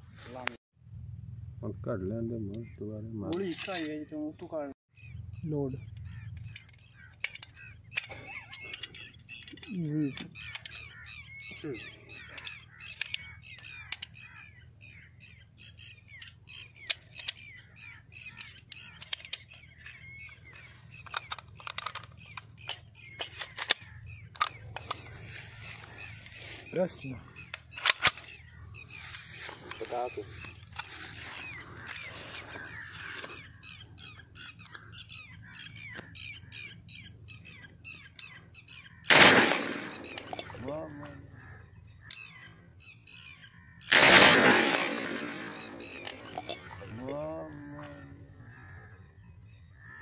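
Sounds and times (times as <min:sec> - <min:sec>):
birds calling: 0:00.0 - 0:50.0
metallic clicks of cartridges: 0:06.0 - 0:14.3, 0:16.1 - 0:25.1, 0:27.4 - 0:28.5, 0:39.1 - 0:40.6, 0:44.7 - 0:47.2.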